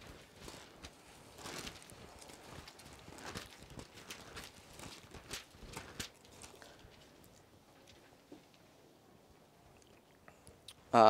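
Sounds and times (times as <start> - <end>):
paper pages rustling: 0.0 - 8.0.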